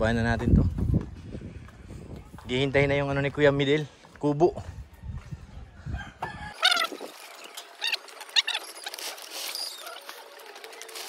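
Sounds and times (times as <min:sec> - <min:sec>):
rooster crowing: 0:05.9 - 0:07.0.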